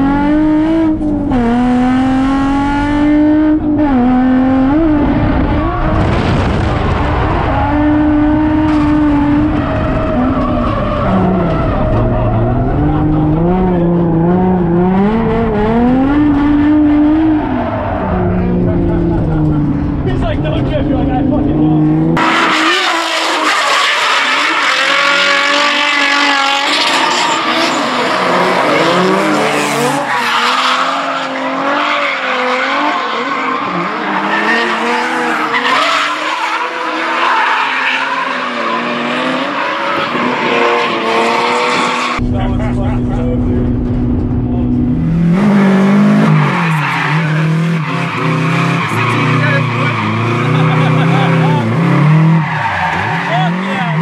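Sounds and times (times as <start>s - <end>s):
car engines revving: 0.0s - 54.0s.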